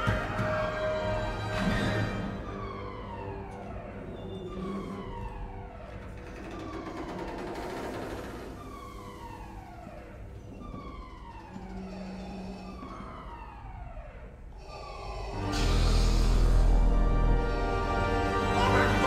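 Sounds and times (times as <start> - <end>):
falling electronic alarm tone: 0.1 - 6.0, 6.6 - 19.0.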